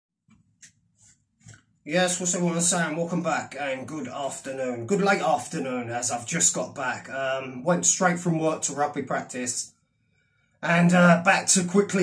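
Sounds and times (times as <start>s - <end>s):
man speaking: 1.9s - 9.6s, 10.6s - 12.0s.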